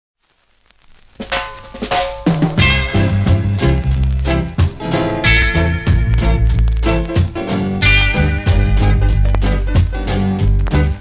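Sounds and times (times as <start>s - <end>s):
faint record hiss: 0.2s - 11.0s
snare and cymbal hit: 1.2s - 10.8s
reggae band playing: 1.2s - 11.0s.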